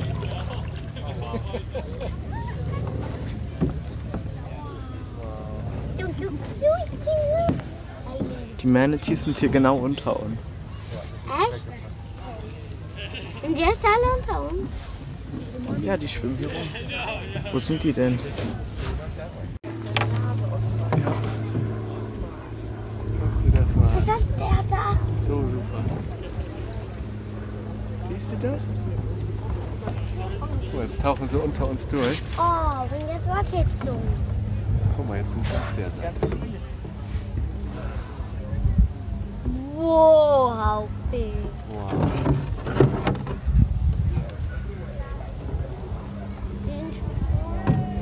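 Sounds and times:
faint voices: 0:00.0 - 0:48.0
low hum: 0:00.0 - 0:48.0
people talking indistinctly: 0:00.0 - 0:48.0
steady low rumble: 0:18.5 - 0:48.0.

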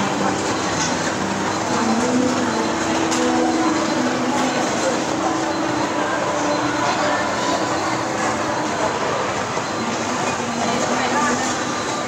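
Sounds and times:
hubbub of indistinct voices: 0:00.0 - 0:12.0.

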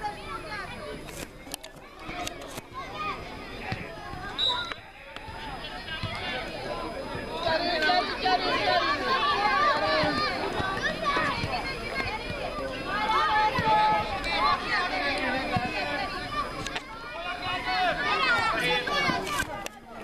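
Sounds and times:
children shouting and calling: 0:00.0 - 0:20.0.

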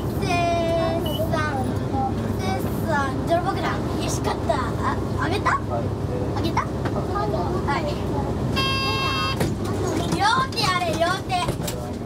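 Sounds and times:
bus engine and road rumble: 0:00.0 - 0:12.0
people's voices: 0:00.0 - 0:12.0
short steady pitched tone: 0:08.6 - 0:09.4.

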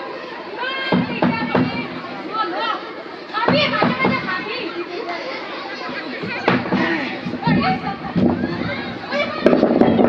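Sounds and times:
young voices talking and calling: 0:00.0 - 0:10.0.

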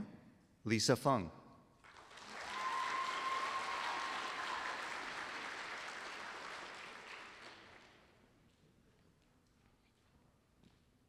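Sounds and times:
audience applauding: 0:01.8 - 0:08.0.

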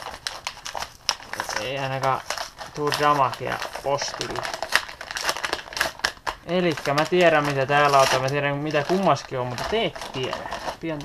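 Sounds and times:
paper crumpling and crinkling: 0:00.0 - 0:11.0.

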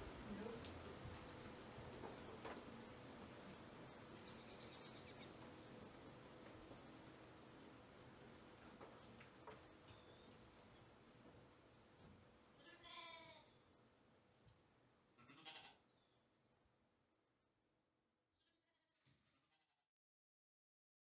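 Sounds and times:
sheep bleating: 0:12.6 - 0:13.6, 0:15.2 - 0:15.8.

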